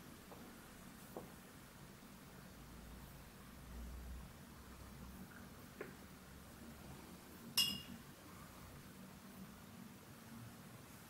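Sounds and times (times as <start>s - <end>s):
paintbrush clinking on container: 7.6s - 8.0s.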